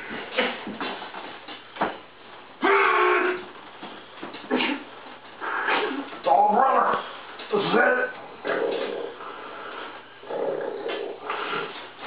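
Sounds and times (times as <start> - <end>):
men straining grunts and groans: 2.6 - 3.5.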